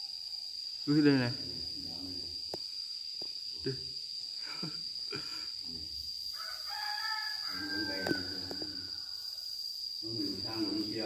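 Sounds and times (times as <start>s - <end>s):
rooster crowing: 6.2s - 9.6s.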